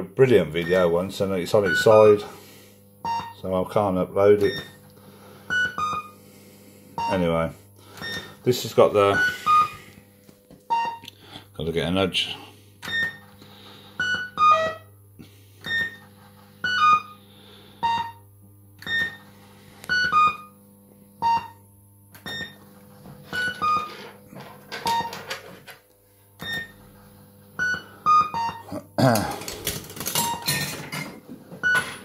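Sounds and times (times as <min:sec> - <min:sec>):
low electrical hum: 0:00.0 - 0:32.0
fruit machine electronic bleeps: 0:00.6 - 0:01.0, 0:01.6 - 0:02.3, 0:03.0 - 0:03.4, 0:04.4 - 0:04.8, 0:05.5 - 0:06.2, 0:07.0 - 0:07.3, 0:07.9 - 0:08.4, 0:09.0 - 0:09.9, 0:10.7 - 0:11.1, 0:12.8 - 0:13.3, 0:14.0 - 0:15.0, 0:15.6 - 0:16.0, 0:16.6 - 0:17.2, 0:17.8 - 0:19.2, 0:19.8 - 0:20.6, 0:21.2 - 0:21.6, 0:22.2 - 0:22.6, 0:23.2 - 0:24.1, 0:24.8 - 0:25.2, 0:26.4 - 0:26.8, 0:27.6 - 0:28.7, 0:31.6 - 0:32.0.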